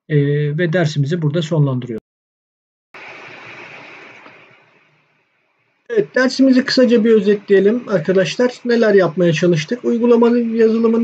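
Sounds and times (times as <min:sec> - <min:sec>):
recording hiss: 0:03.0 - 0:11.0.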